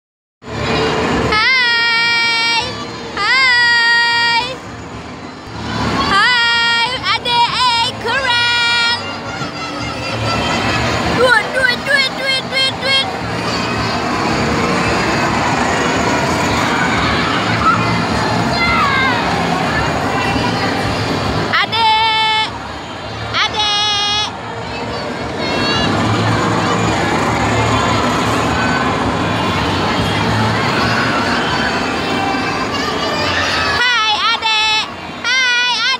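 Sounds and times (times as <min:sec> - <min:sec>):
crowd chatter: 0:00.4 - 0:35.9.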